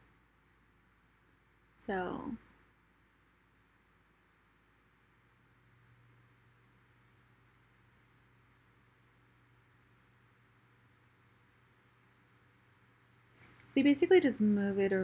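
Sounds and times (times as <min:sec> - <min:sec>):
air conditioner and fan hum: 0:00.0 - 0:15.0.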